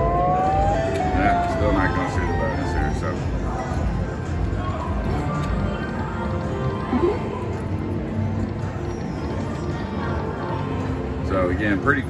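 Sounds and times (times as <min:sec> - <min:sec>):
slot machine game music: 0:00.0 - 0:03.5
casino background din: 0:00.0 - 0:10.4.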